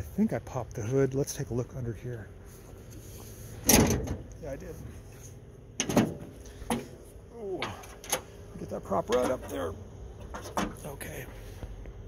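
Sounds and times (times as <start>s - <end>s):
steel hood clunks: 3.6s - 4.3s, 5.8s - 8.4s, 9.1s - 10.8s.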